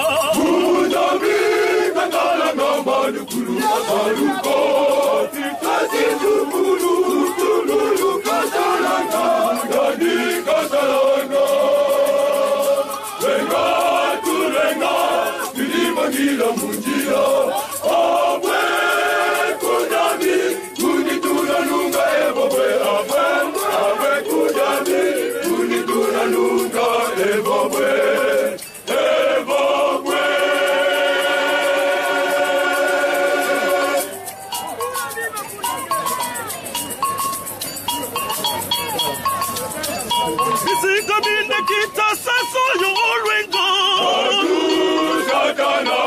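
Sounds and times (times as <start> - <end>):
men singing in chorus: 0.0 - 34.2, 40.6 - 46.0.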